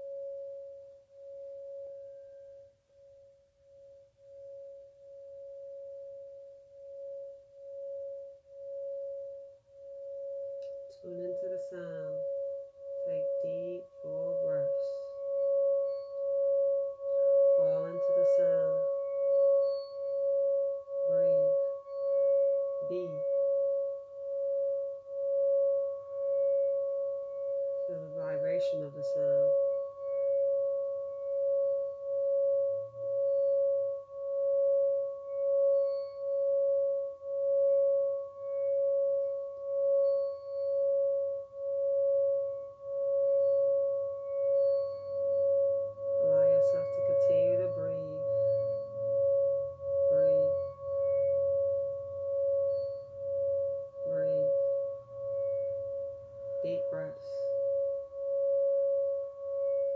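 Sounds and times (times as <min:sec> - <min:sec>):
singing bowl ringing tone: 0:00.0 - 0:59.9.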